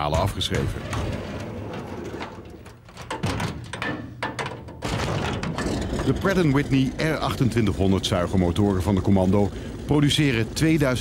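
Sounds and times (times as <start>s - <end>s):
metal door creaking: 0.1s - 7.6s.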